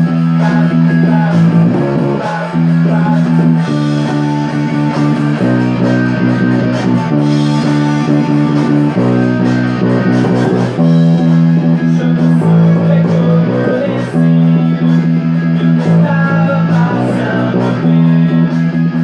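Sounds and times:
bass guitar riff: 0.0s - 19.0s
punk rock song: 0.0s - 19.0s.

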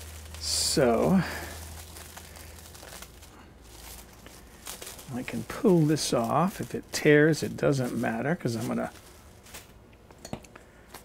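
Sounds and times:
cling wrap crinkling: 0.0s - 10.0s.

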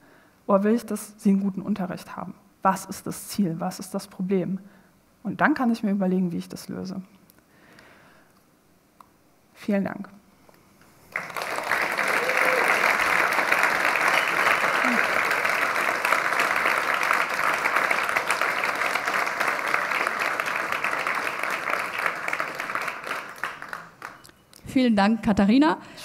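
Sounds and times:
audience applauding: 11.1s - 24.3s.

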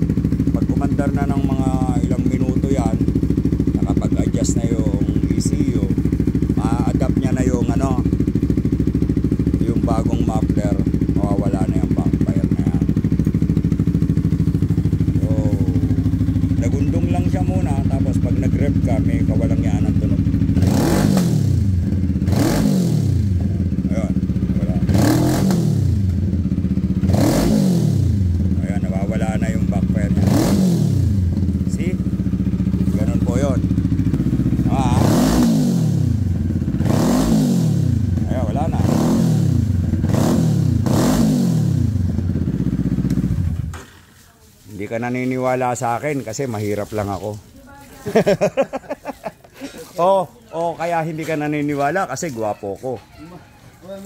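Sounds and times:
motorcycle engine idling and revving: 0.0s - 54.0s.

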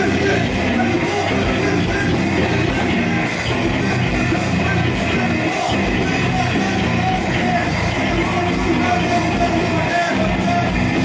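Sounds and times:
punk band playing loudly: 0.0s - 11.0s.

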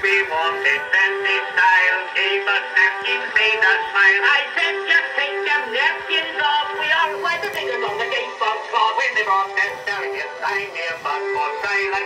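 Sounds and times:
two men singing a comic duet: 0.0s - 12.0s.

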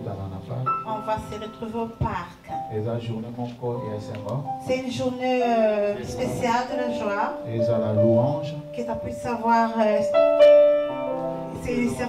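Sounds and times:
sustained keyboard music: 0.0s - 12.0s.

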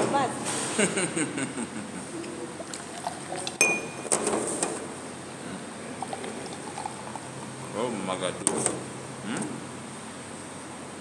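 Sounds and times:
glass and metal tableware clinking: 3.6s - 4.2s.

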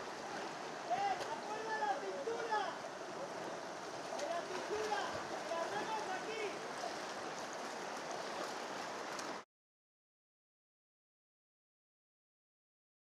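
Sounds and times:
river water rushing: 0.0s - 9.4s.

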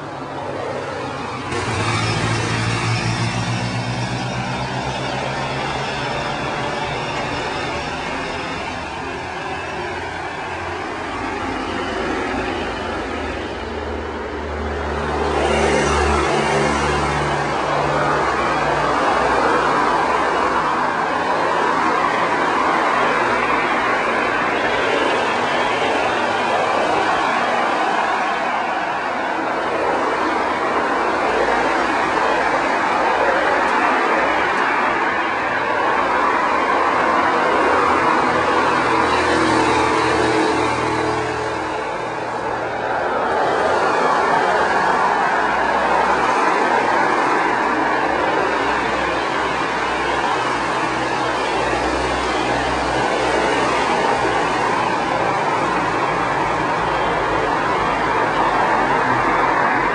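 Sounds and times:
cars driving past: 0.0s - 59.9s
tyre and road noise: 0.0s - 59.9s.

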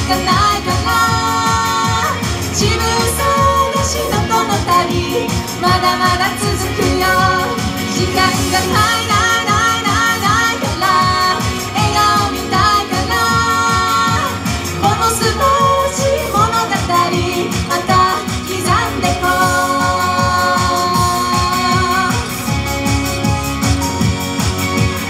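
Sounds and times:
woman singing into microphone: 0.0s - 22.6s
pop accompaniment with bass beat: 0.0s - 25.0s.

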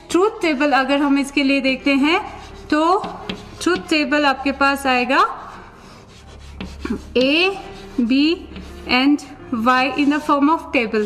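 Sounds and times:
woman speaking: 0.1s - 5.6s, 6.9s - 11.0s
chalk scratching on chalkboard: 1.4s - 11.0s.

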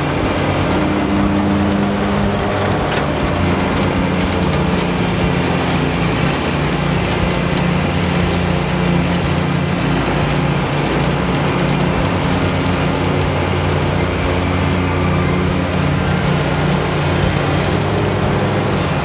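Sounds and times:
mower engine cutting grass: 0.0s - 19.0s.

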